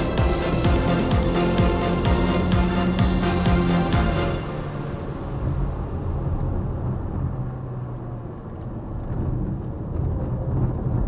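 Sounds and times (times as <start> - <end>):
car engine: 0.0 - 10.2
road noise inside car: 0.0 - 11.0.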